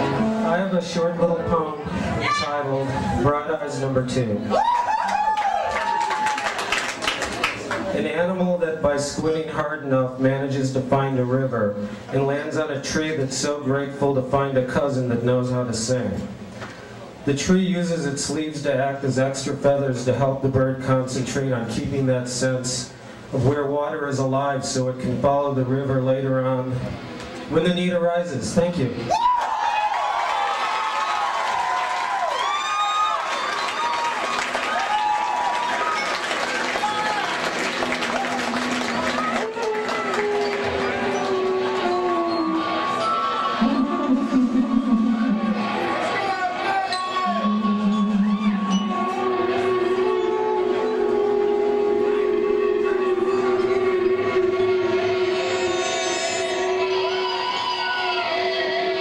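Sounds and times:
acoustic guitar: 0.0s - 4.4s
audience cheering: 4.4s - 8.0s, 29.1s - 51.8s, 54.7s - 59.0s
audience applauding: 4.6s - 8.0s, 29.3s - 46.7s
long droning notes: 37.1s - 59.0s.

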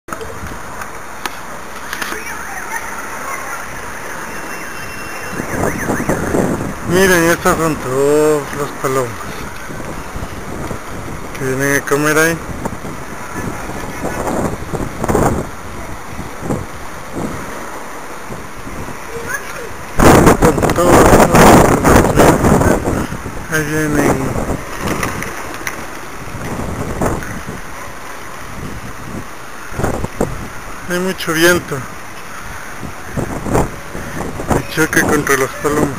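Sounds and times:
steady background noise: 0.1s - 35.9s
wind buffeting microphone: 0.1s - 35.9s
electronic alarm siren wailing: 2.0s - 6.7s
man's voice: 6.9s - 9.3s, 20.1s - 24.4s, 34.6s - 35.9s.

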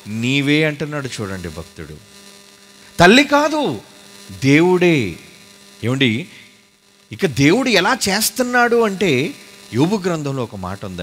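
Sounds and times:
man's amplified voice: 0.0s - 2.0s, 3.0s - 5.2s, 5.8s - 6.4s, 7.1s - 11.0s
electrical mains hum: 0.0s - 11.0s.

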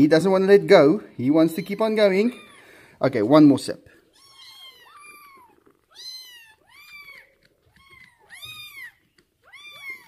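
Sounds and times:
kittens meowing: 1.6s - 2.9s, 4.1s - 10.0s.

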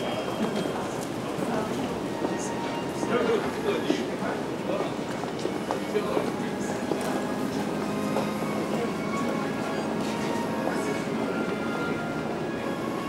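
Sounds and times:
chatter of passers-by: 0.0s - 13.0s.

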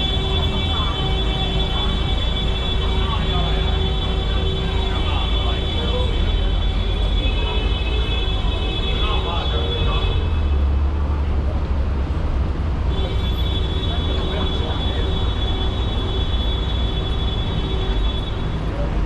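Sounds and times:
pedestrians' voices: 0.0s - 19.0s
traffic rumble: 0.0s - 19.0s.

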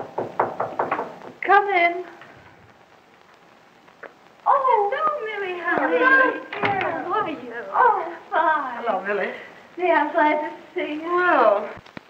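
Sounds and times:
rapid knocking on a door: 0.0s - 1.4s
woman calling out: 4.5s - 9.0s.

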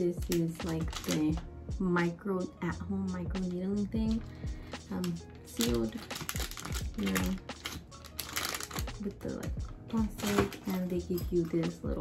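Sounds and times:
background music: 0.0s - 12.0s
light clicks and taps of packaging: 0.2s - 1.4s, 4.9s - 11.6s.

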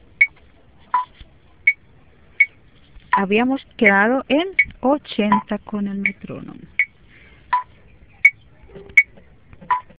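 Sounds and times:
metronome ticking: 3.2s - 8.4s.

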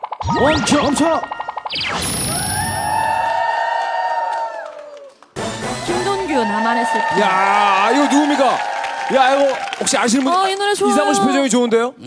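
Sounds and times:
studio crowd noise: 0.3s - 12.0s.

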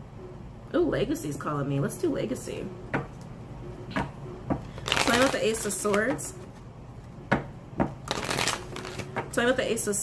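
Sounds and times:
cards riffling: 8.0s - 9.2s
cards snapping: 8.0s - 9.2s.

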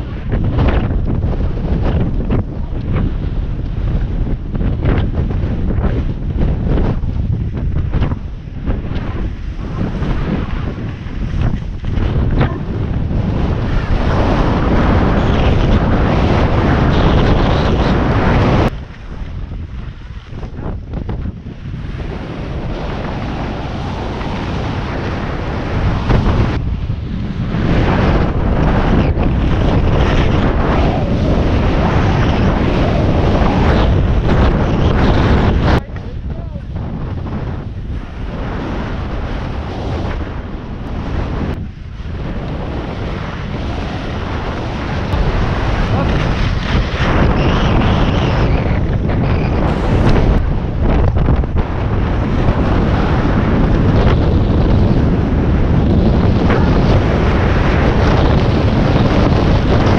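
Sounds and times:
wind rushing over microphone: 0.0s - 59.9s.

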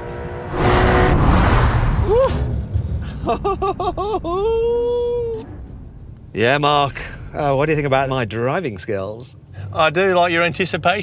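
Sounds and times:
man laughing: 2.1s - 5.4s.

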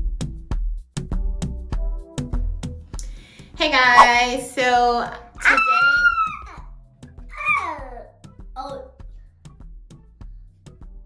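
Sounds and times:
toddler squealing: 5.4s - 6.6s, 7.3s - 7.9s.

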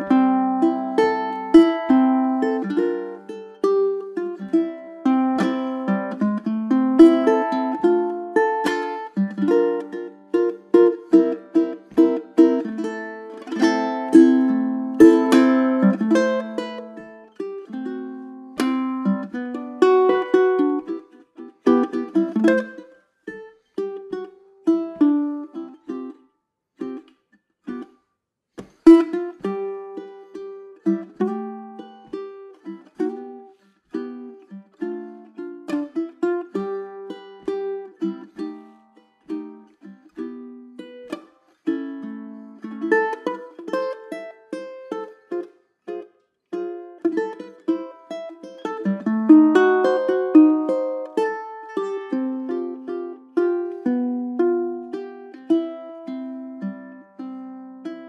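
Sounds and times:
ukulele playing swing tune: 0.0s - 28.0s, 28.6s - 58.0s.

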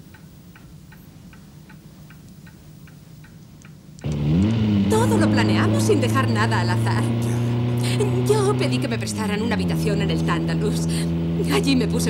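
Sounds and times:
clock ticking: 0.0s - 4.5s
loud low drone: 4.1s - 12.0s.

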